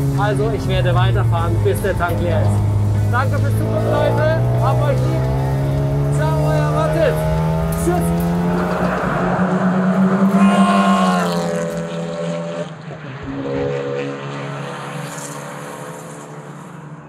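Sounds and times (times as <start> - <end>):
race car engine running hard: 0.0 - 17.0.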